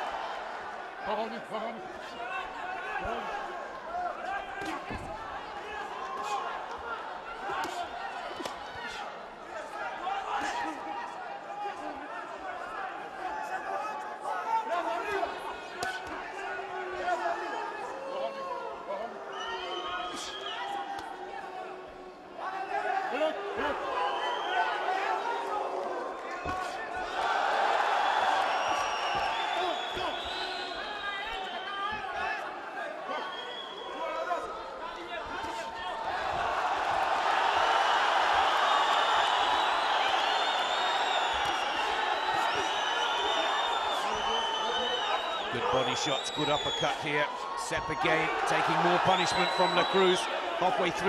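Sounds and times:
crowd shouting and cheering: 0.0s - 51.0s.

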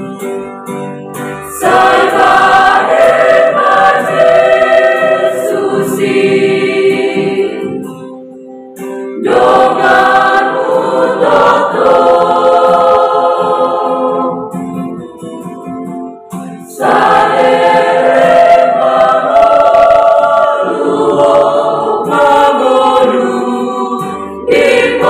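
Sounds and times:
youth choir singing a hymn: 1.4s - 8.1s, 9.2s - 15.0s, 16.6s - 25.0s.

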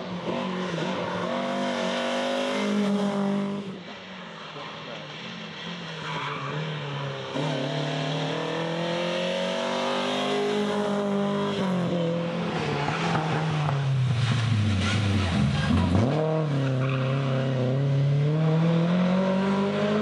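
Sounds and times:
rally car engine revving: 6.1s - 20.0s.

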